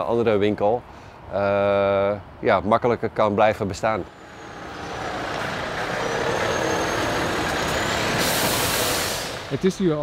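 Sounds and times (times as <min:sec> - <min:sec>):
lorry passing: 0:03.9 - 0:10.0
air brakes hissing: 0:04.1 - 0:09.7.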